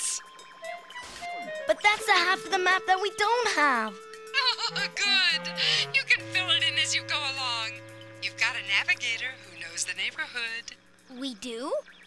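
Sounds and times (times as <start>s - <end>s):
background music: 0.0s - 11.0s
person speaking: 4.7s - 10.7s.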